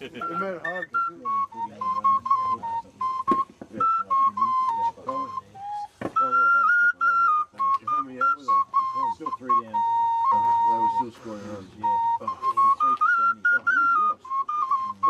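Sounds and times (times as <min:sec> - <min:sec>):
flute playing a tune: 0:00.0 - 0:15.0
people talking: 0:00.0 - 0:15.0.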